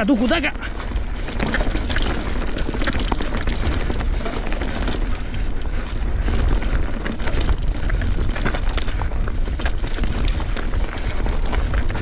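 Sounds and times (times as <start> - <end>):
bike rattling: 0.0 - 12.0
bike tyres crunching over stones: 0.0 - 12.0
wind rumble on microphone: 0.0 - 12.0.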